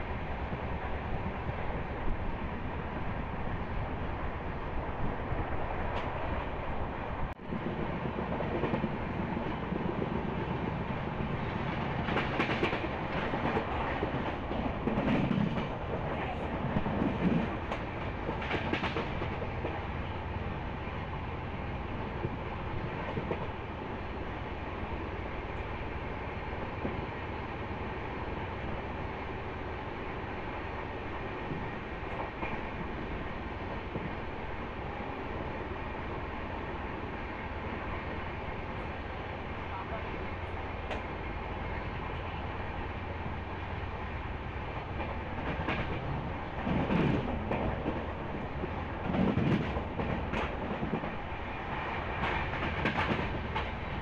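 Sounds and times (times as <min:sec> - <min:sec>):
train wheels rumbling on rail: 0:00.0 - 0:54.0
train clattering: 0:07.5 - 0:36.7, 0:37.4 - 0:54.0.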